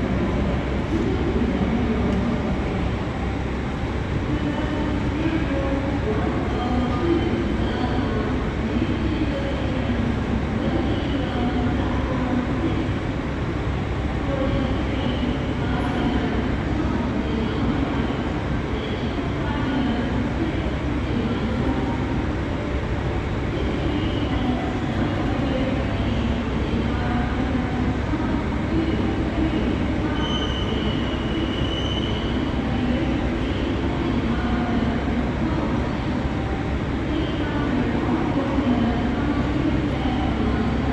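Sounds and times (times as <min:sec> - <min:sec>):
railway station platform din: 0:00.0 - 0:40.9
trains standing at platforms: 0:00.0 - 0:40.9
brief high squeals: 0:30.2 - 0:32.3.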